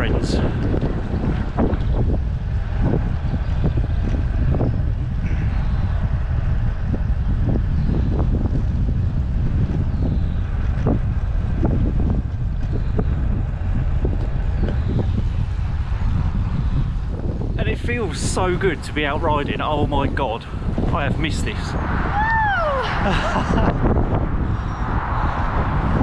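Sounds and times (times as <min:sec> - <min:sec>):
wind rumbling on microphone: 0:00.0 - 0:26.0.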